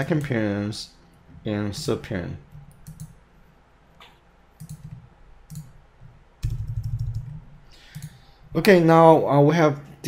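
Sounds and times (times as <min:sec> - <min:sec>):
computer keyboard typing: 0:02.5 - 0:03.2, 0:04.6 - 0:05.7, 0:06.4 - 0:08.2.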